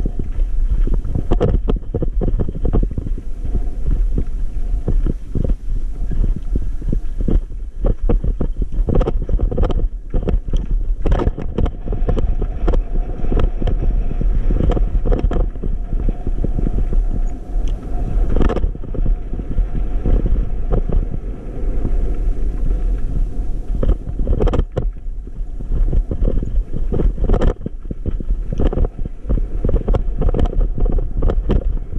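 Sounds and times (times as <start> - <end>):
bike knocking and rattling: 0.0 - 21.2, 22.2 - 31.9
heavy rumble: 0.0 - 31.9
wind on microphone: 0.0 - 31.9.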